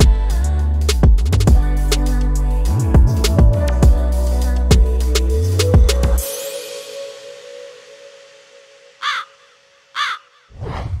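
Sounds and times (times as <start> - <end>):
crow cawing: 9.0 - 10.5.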